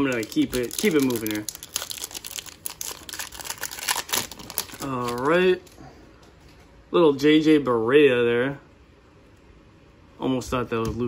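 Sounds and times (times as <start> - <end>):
plastic wrapper crinkling and tearing: 0.0 - 5.8.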